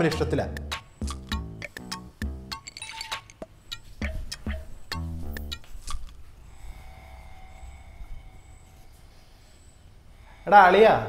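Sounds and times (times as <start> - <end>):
faint thin tones: 4.8 - 11.0.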